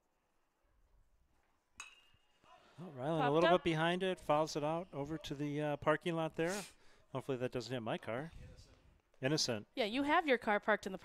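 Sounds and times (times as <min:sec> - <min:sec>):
metal bat hitting ball: 0:01.8 - 0:02.3.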